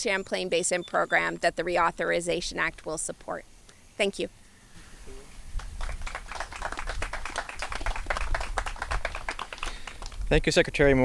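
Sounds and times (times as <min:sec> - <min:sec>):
crowd applauding: 0:05.6 - 0:10.4.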